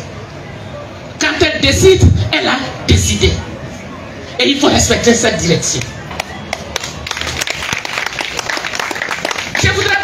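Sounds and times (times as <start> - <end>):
crowd applauding: 6.1 - 10.0.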